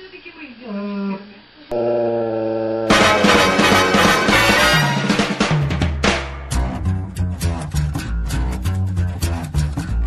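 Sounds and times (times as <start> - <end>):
loud music with drums: 2.9 - 10.0.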